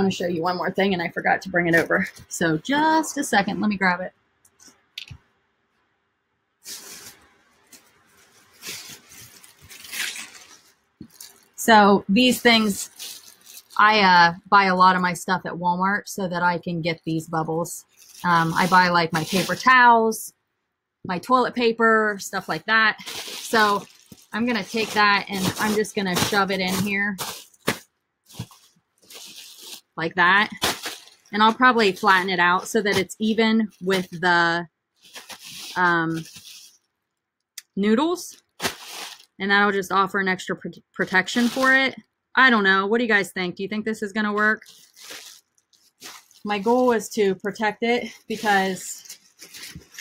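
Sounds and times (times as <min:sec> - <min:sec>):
plastic air pillows crinkling: 0:06.6 - 0:14.3, 0:17.8 - 0:19.9, 0:22.3 - 0:36.9, 0:38.3 - 0:39.4, 0:41.0 - 0:42.0, 0:44.4 - 0:50.0.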